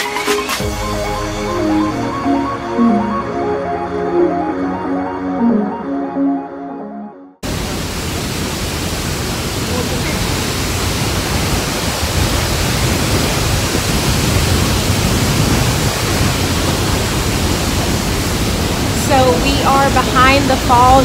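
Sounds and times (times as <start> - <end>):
waterfall roaring: 7.4 - 21.0
woman's voice: 19.0 - 21.0.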